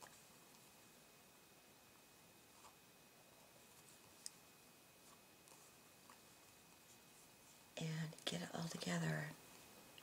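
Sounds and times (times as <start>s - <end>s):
woman speaking softly: 7.8s - 9.4s.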